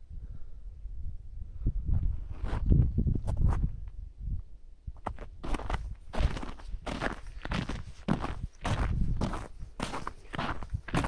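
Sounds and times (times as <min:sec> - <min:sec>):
footsteps on frozen snow: 0:05.0 - 0:11.0.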